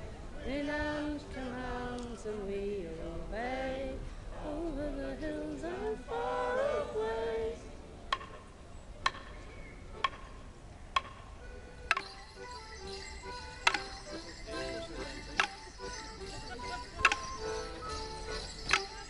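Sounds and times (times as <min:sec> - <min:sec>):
stepped folk melody: 0:09.1 - 0:19.0.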